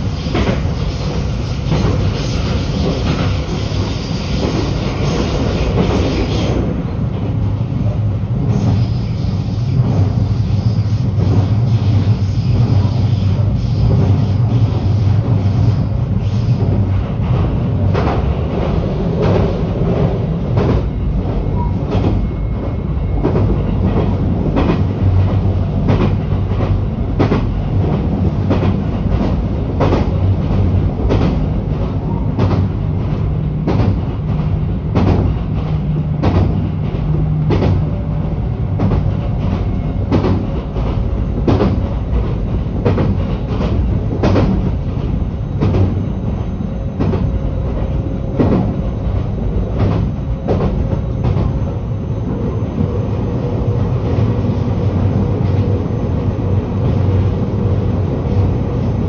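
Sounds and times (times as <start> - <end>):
train rumbling inside carriage: 0.0 - 59.0.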